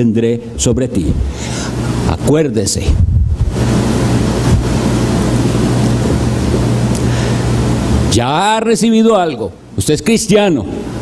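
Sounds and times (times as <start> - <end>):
low hum: 0.4 - 8.3
steady rushing noise: 2.8 - 8.2.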